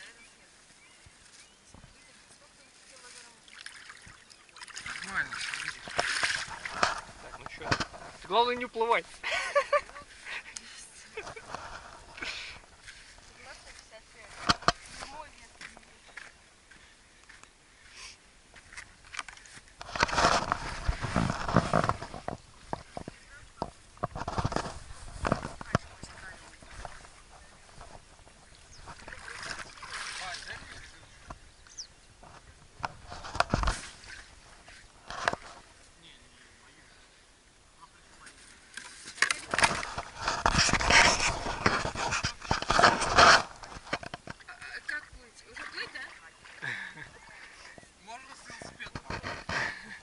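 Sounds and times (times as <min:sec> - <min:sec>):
water sloshing and splashing: 0:02.0 - 0:09.2, 0:18.6 - 0:36.6, 0:38.0 - 0:49.5.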